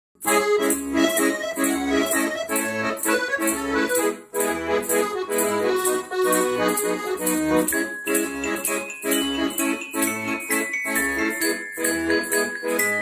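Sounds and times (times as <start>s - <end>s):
accordion playing a tune: 0.2s - 13.0s.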